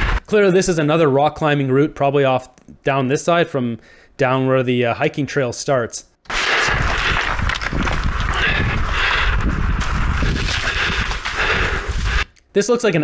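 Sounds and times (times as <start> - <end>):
wind buffeting microphone: 6.7 - 12.3.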